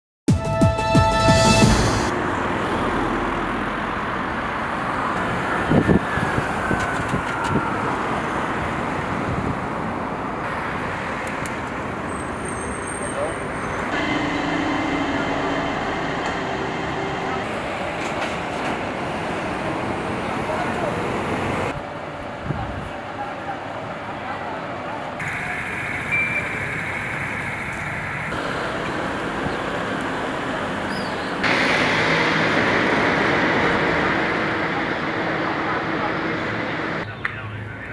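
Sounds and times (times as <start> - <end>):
passing road traffic: 0.5 - 37.9
voices: 12.9 - 18.8, 20.1 - 37.9.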